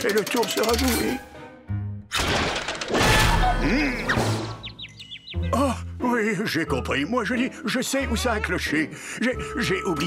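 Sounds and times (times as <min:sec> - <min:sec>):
cartoon crash: 0:02.2 - 0:04.5.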